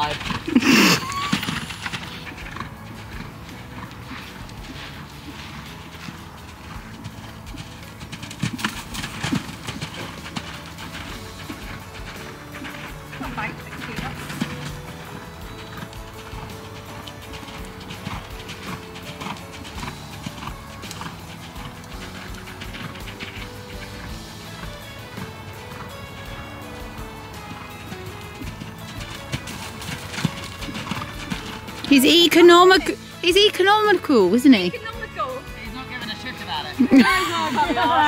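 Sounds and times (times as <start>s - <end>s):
background music: 0.0s - 38.0s
horse hoofbeats on soft ground: 0.0s - 38.0s.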